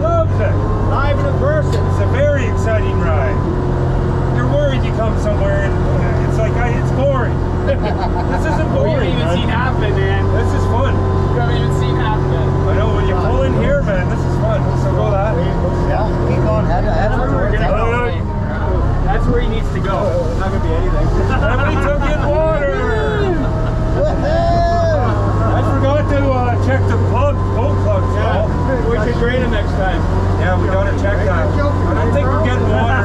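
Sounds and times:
vehicle engine droning: 0.0 - 33.0
voices talking: 0.0 - 33.0.

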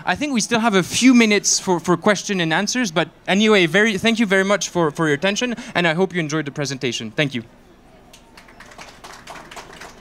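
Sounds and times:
audience applauding: 8.1 - 10.0.

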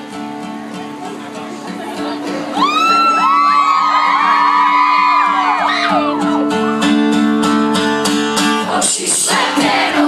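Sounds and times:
strummed acoustic guitar: 0.0 - 10.0
crowd screaming and whooping: 2.3 - 6.9.

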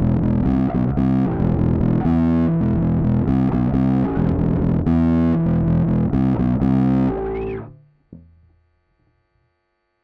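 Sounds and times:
distorted electric bass riff: 0.0 - 8.9.

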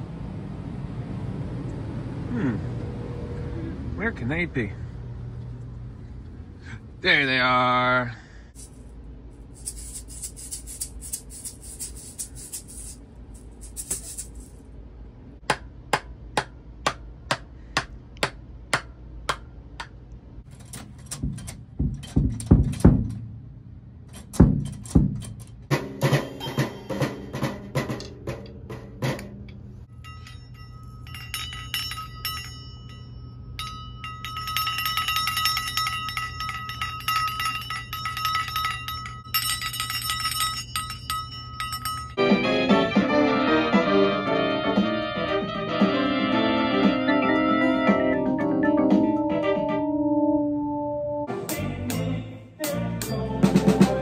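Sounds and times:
drum kit hits with sticks: 21.2 - 23.3, 24.3 - 29.4
bell-like ringing tones: 26.2 - 27.4, 29.9 - 42.5.

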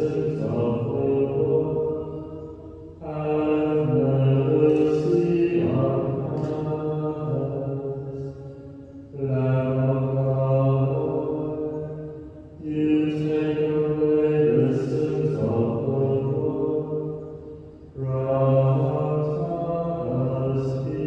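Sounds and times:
slow sung church chant: 0.0 - 21.0.

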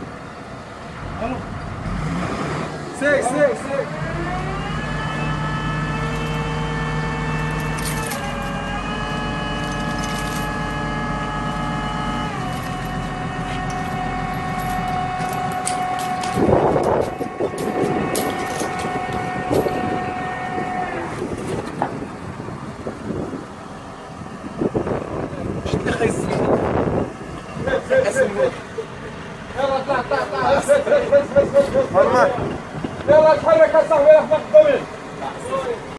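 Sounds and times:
diesel engine running: 0.0 - 35.9.

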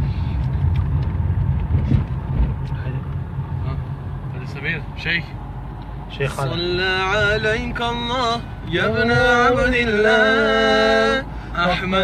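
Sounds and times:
vehicle cabin rumble: 0.0 - 12.0.

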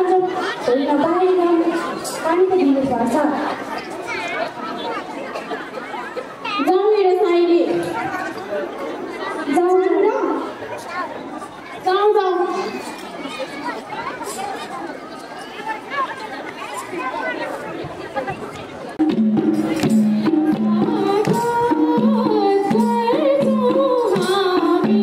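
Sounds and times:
speech: 0.0 - 19.0
crowd chatter: 0.0 - 25.0.

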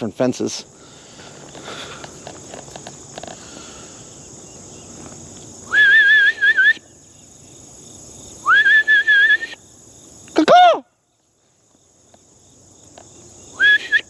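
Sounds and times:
insects buzzing: 0.0 - 14.0
man whistling warbling call: 5.7 - 6.9, 8.4 - 9.6, 13.6 - 14.0.

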